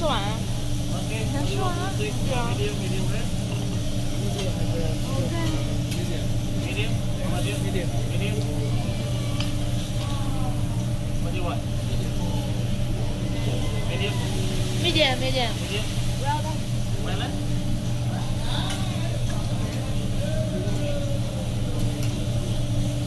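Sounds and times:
food sizzling on a griddle: 0:00.0 - 0:23.0
restaurant chatter: 0:00.0 - 0:23.0
steady low hum: 0:00.0 - 0:23.0.

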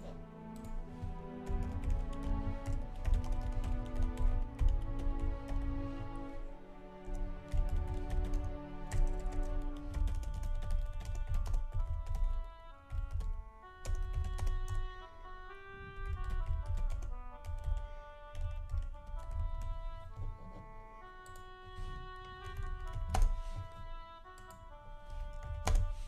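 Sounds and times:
background music of held notes: 0:00.0 - 0:26.0
computer keyboard typing: 0:01.5 - 0:05.6, 0:07.5 - 0:14.8, 0:16.1 - 0:17.8, 0:18.4 - 0:20.3, 0:22.5 - 0:23.8, 0:25.4 - 0:25.9.

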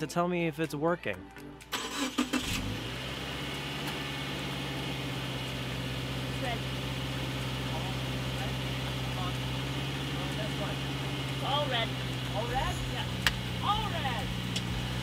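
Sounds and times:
car engine starting and idling: 0:01.6 - 0:15.0.

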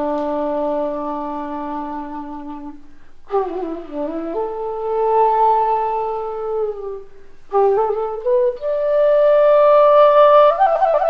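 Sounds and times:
bamboo flute long note: 0:00.0 - 0:11.0.

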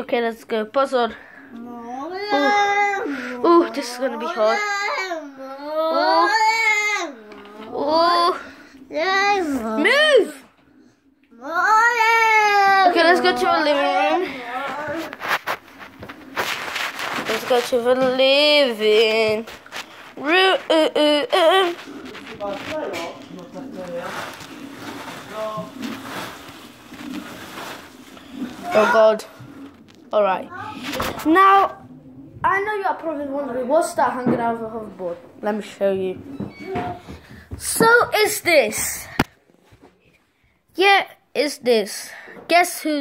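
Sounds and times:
child wailing and crying: 0:04.5 - 0:08.3.

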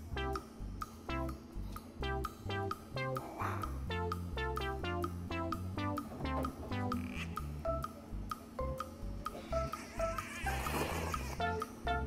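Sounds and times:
background music with plucked melody: 0:00.0 - 0:12.0.

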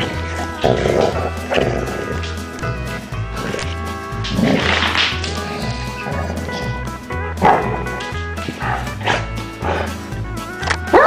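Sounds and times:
background music with steady beat: 0:00.0 - 0:11.0
dogs growling: 0:00.0 - 0:11.0.

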